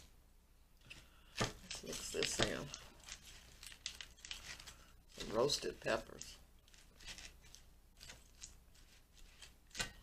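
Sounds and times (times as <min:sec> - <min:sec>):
lettuce rustling: 0:00.9 - 0:10.0.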